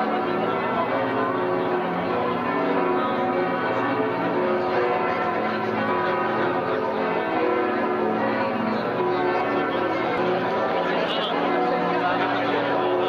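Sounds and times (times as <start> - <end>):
church bells ringing in a peal: 0.0 - 13.0.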